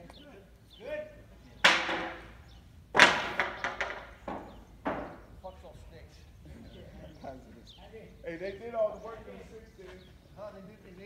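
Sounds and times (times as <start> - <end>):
wood knocking on wood: 1.6 - 5.3.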